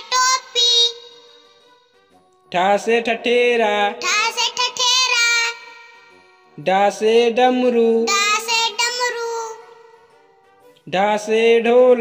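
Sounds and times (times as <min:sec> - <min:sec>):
child singing: 0:00.0 - 0:01.4, 0:03.8 - 0:05.9, 0:07.6 - 0:09.8
soft music backing: 0:00.0 - 0:12.0.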